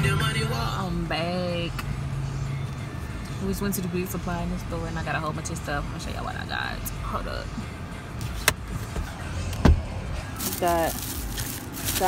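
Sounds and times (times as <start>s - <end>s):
car cabin rumble: 8.2s - 12.0s.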